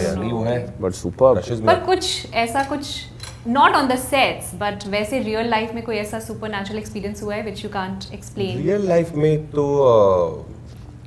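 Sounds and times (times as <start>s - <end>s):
people talking: 0.0s - 10.5s.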